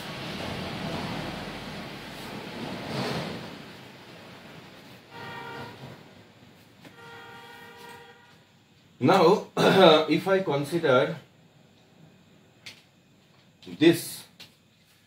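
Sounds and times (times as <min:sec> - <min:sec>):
horn-like tones: 0:05.1 - 0:06.1, 0:06.8 - 0:08.5.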